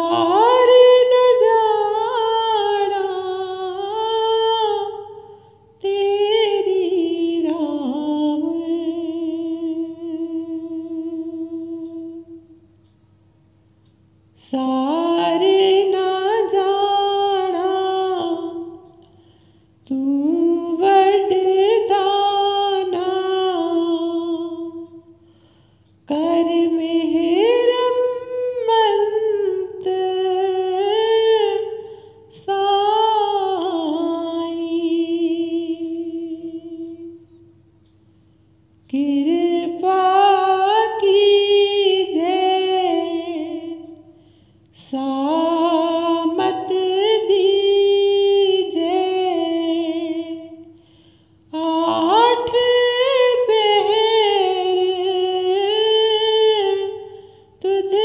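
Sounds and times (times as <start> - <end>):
person singing unaccompanied: 0.0 - 13.0, 13.9 - 38.1, 38.7 - 58.0.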